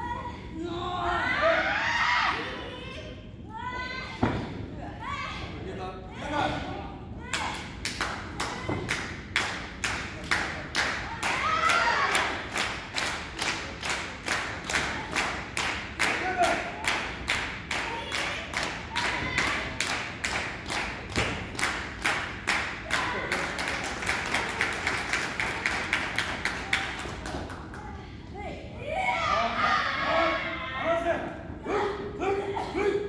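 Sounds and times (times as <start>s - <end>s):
audience clapping in unison: 7.8s - 27.8s.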